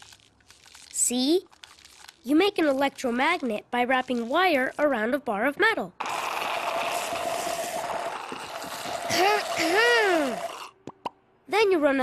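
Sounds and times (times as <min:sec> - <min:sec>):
slurping through straws: 0:00.0 - 0:05.0, 0:06.0 - 0:10.9.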